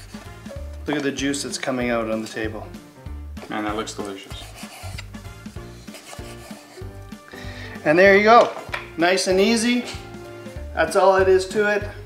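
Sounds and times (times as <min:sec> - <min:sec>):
background music: 0:00.0 - 0:12.0
knife scraping wooden board: 0:04.2 - 0:06.9
knife sawing through meat: 0:04.3 - 0:07.0.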